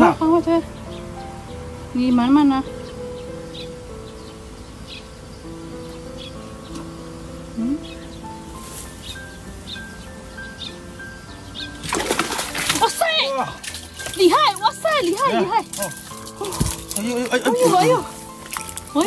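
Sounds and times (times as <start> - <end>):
background music: 0.0 - 19.0
water splashing: 11.6 - 19.0.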